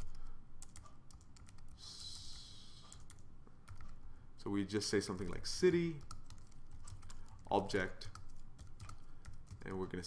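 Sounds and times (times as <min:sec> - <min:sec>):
keyboard typing: 0:00.0 - 0:04.0, 0:04.9 - 0:09.9.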